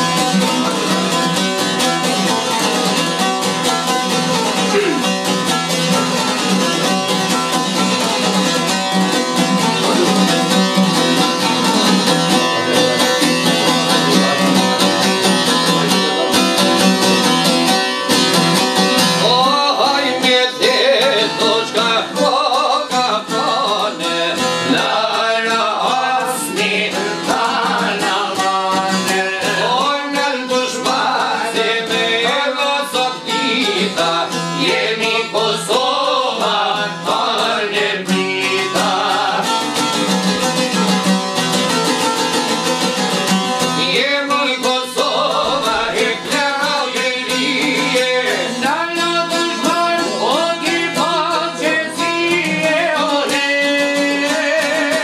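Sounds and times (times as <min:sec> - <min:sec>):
plucked lute music: 0:00.0 - 0:55.0
man singing: 0:04.5 - 0:05.3, 0:09.7 - 0:17.4, 0:18.9 - 0:40.1, 0:43.8 - 0:55.0.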